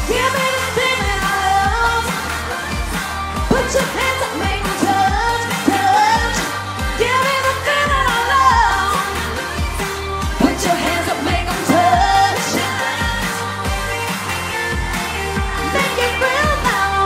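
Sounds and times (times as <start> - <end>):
dance-pop song over sound system: 0.0 - 17.0.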